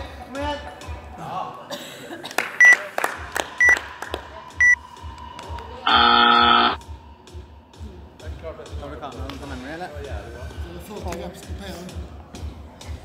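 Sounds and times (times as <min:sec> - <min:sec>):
background music with beat: 0:02.1 - 0:13.0
low buzzer tone: 0:05.9 - 0:06.8.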